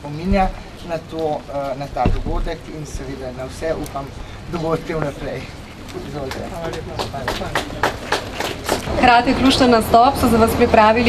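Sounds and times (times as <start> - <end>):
people clapping: 5.8 - 9.2.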